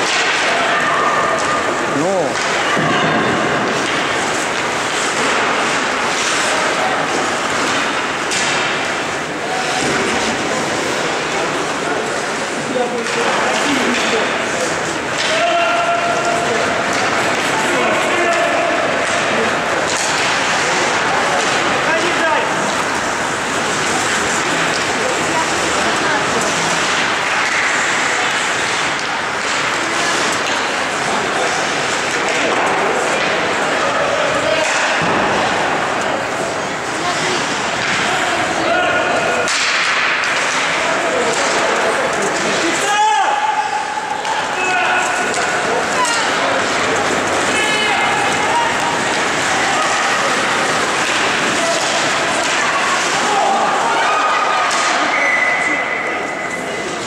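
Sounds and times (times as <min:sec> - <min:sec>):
players shouting: 0:00.0 - 0:57.0
skates scraping ice: 0:00.0 - 0:57.0
sticks and puck knocking: 0:44.2 - 0:53.5.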